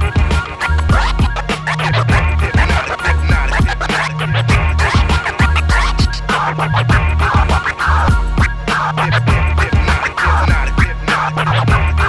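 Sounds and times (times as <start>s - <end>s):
beat with deep bass: 0.0s - 12.0s
record scratching: 0.0s - 12.0s.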